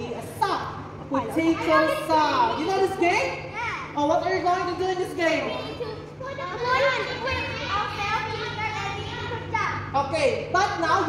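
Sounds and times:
children calling out together: 0:05.6 - 0:09.9.

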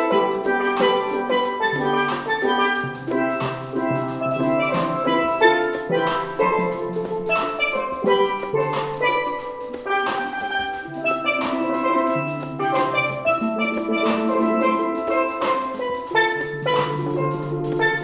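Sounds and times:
steel pan ensemble playing: 0:00.0 - 0:18.0.

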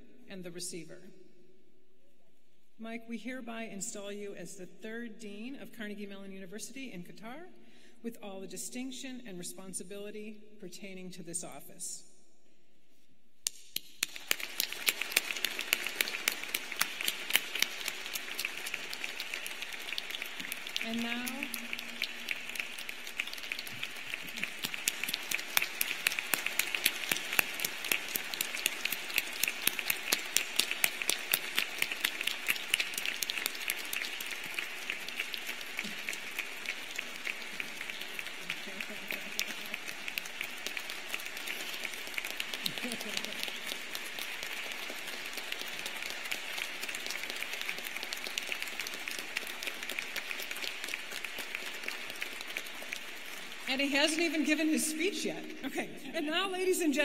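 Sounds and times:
large audience applauding: 0:13.8 - 0:54.8.

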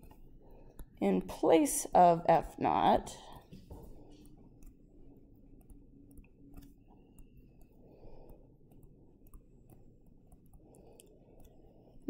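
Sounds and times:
low room hum: 0:00.0 - 0:12.0
stylus tapping on tablet screen: 0:05.6 - 0:11.6.

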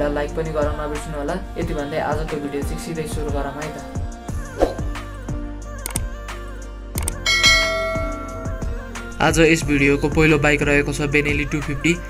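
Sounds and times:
background music with steady beat: 0:00.0 - 0:12.0
bell-like notification chime: 0:07.3 - 0:08.7.

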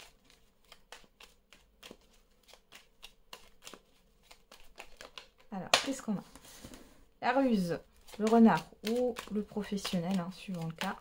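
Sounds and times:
cards being shuffled: 0:00.0 - 0:06.8, 0:07.4 - 0:11.0.

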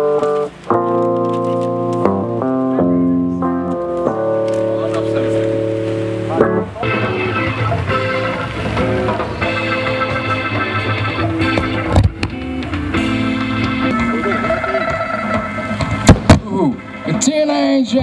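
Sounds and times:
live rock band: 0:00.0 - 0:18.0
loud low thump: 0:14.9 - 0:16.8.

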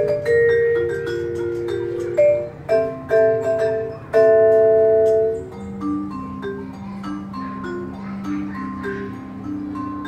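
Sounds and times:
vibraphone notes: 0:00.0 - 0:10.0.

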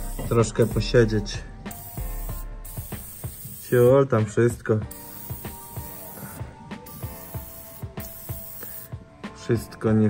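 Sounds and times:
aerosol can spraying: 0:00.0 - 0:04.1, 0:04.9 - 0:09.0
music with steady beat: 0:00.0 - 0:09.8.

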